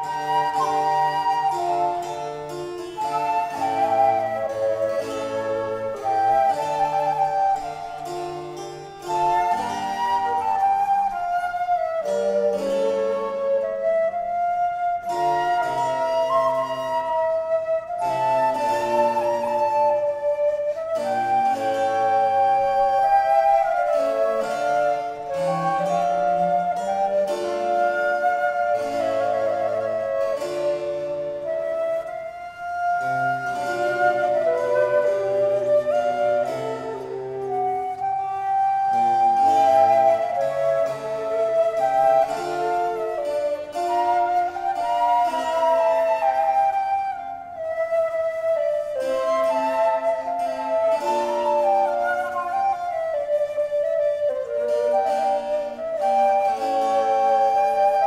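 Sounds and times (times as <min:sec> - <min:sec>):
flutes playing melodies: 0:00.0 - 0:58.0
harpsichord: 0:00.0 - 0:58.0
viola da gamba: 0:00.0 - 0:58.0.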